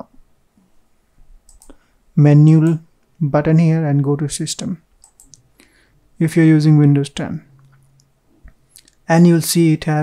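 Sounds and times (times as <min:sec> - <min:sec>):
faint computer mouse clicks: 0:01.5 - 0:01.8, 0:05.0 - 0:05.5.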